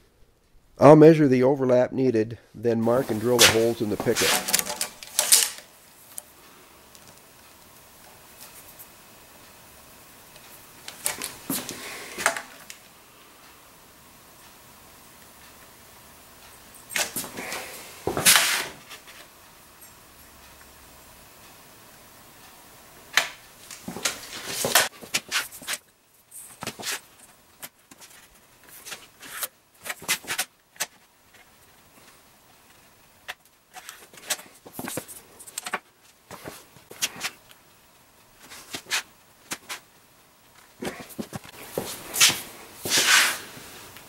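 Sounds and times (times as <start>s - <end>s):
hand tools rustling and scraping: 2.9s - 5.7s, 16.9s - 19.4s, 23.7s - 37.4s, 38.4s - 39.9s, 40.6s - 44.0s
steel rule scraping on steel: 42.2s - 43.5s.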